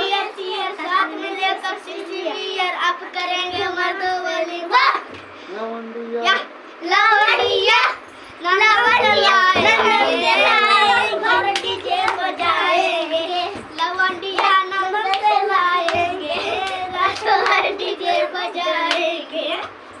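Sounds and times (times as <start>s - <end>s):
sharp claps: 11.3s - 12.5s, 13.6s - 17.7s, 18.8s - 19.1s.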